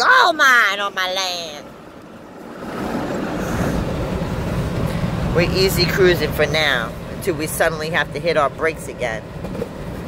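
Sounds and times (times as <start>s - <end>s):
car driving from inside cabin: 0.4s - 10.0s.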